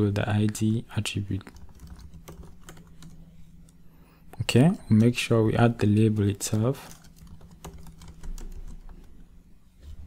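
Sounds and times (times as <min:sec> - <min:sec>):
faint low hum: 0:00.0 - 0:10.0
keyboard keystrokes: 0:01.5 - 0:03.2, 0:06.9 - 0:09.1.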